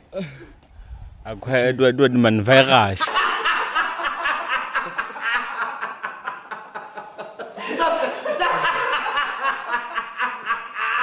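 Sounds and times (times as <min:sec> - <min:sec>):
man laughing hard: 0:03.0 - 0:11.0.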